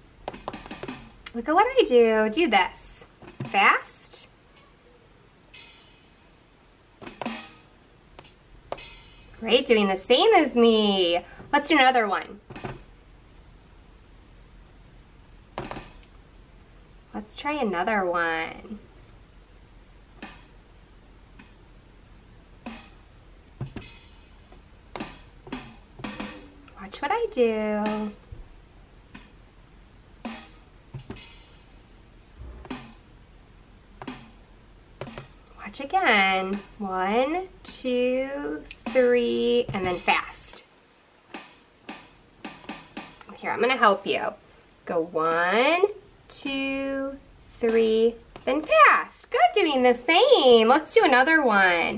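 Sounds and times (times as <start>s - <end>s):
electronic drum hits: 30.2s - 33.2s
finger tapping pads: 32.4s - 33.0s, 35.0s - 35.4s.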